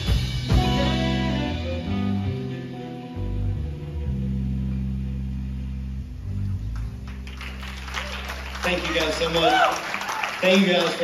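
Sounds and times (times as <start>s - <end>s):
band chord ringing out: 0.0s - 7.3s
audience clapping: 6.7s - 11.0s.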